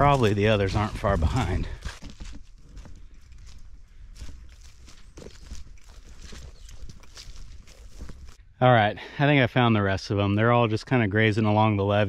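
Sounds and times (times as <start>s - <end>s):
footsteps through grass and dry leaves: 0.0s - 8.5s.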